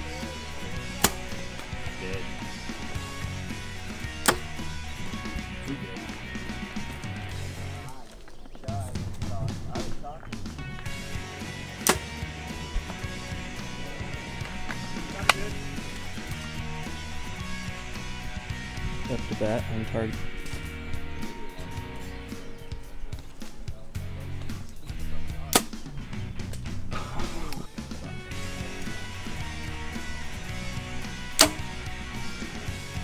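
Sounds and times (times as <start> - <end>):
background music: 0.0 - 33.0
bow shot cracks: 0.8 - 1.6, 11.8 - 12.3, 25.4 - 25.8, 31.0 - 32.4.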